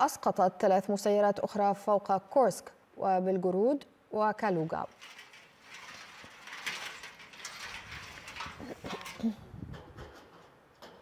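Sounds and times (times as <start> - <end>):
metal fence pickets rattling: 4.5 - 11.0.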